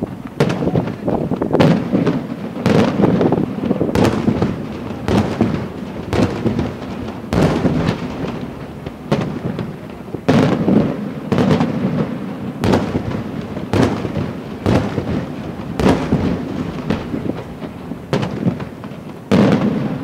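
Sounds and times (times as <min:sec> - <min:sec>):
fireworks bursting: 0:00.0 - 0:20.0.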